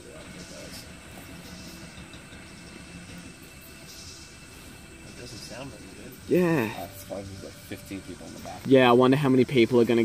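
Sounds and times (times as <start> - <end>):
truck engine rumbling: 0.0 - 8.6.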